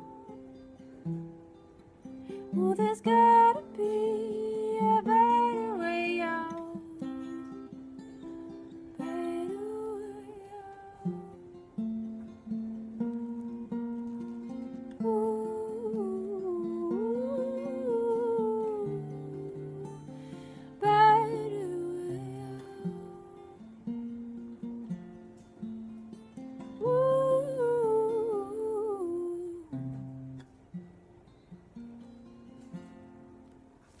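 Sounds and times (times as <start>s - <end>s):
softly picked acoustic guitar: 0.0s - 34.0s
woman humming a melody: 2.4s - 7.7s, 9.0s - 11.6s, 15.0s - 23.7s, 26.8s - 30.3s.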